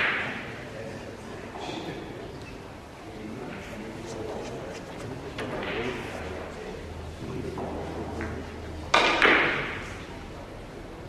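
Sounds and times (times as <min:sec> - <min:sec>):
faint murmuring voices: 0:00.0 - 0:11.0
sharp knocks: 0:08.9 - 0:10.0.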